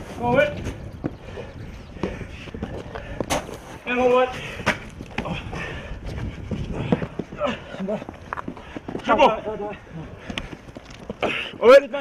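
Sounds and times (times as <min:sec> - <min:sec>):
scuffling on concrete wall: 0:02.0 - 0:12.0.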